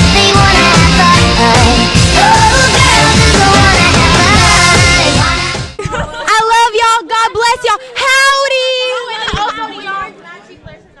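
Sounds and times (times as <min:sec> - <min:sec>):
women calling out and chattering: 0:05.8 - 0:11.0.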